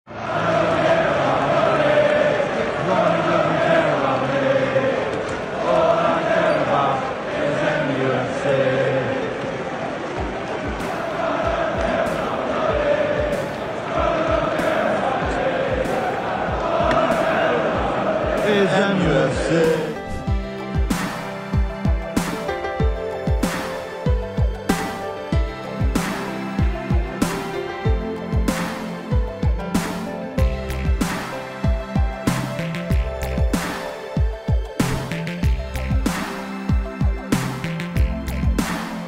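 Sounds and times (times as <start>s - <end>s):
football crowd singing a chant: 0.1s - 20.4s
steady thumping beat: 10.2s - 38.8s.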